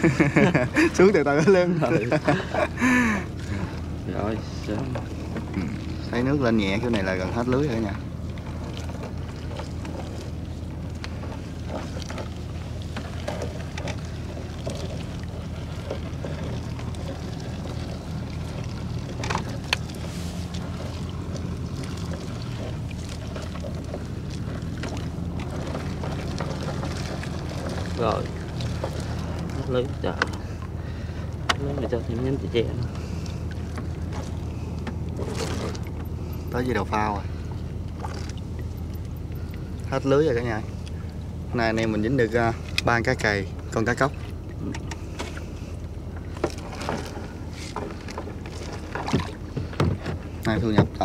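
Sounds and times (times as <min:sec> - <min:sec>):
boat engine idling: 0:00.0 - 0:51.0
water splashing and dripping: 0:48.0 - 0:51.0.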